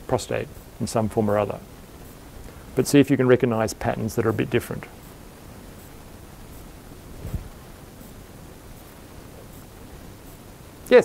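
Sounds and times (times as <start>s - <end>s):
room tone hiss: 0.0s - 11.0s
soft low-pitched sound: 4.3s - 10.5s.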